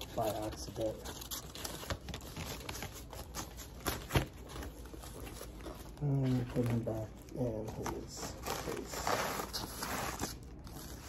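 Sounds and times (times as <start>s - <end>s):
plastic packaging rustling: 0.0s - 11.0s.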